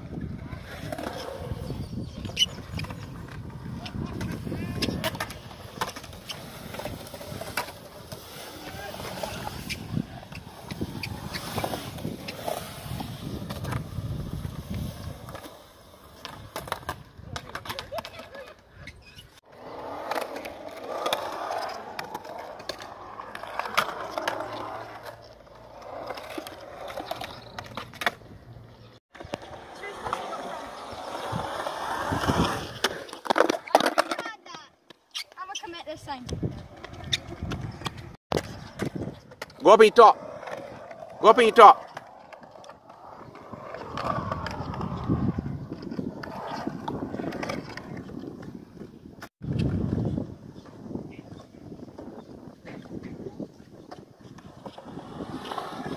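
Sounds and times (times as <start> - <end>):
skateboard wheels rolling on concrete: 0.0 - 55.9.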